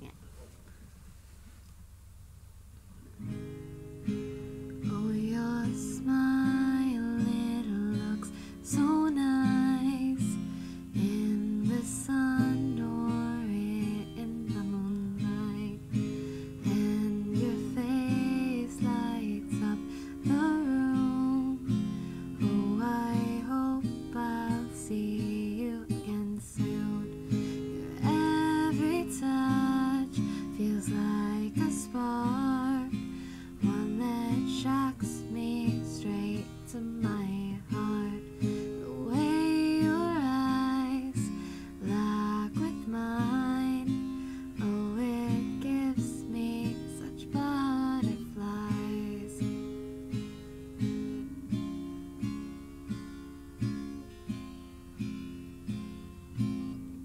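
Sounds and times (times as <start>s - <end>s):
acoustic guitar strumming chords: 2.9s - 57.0s.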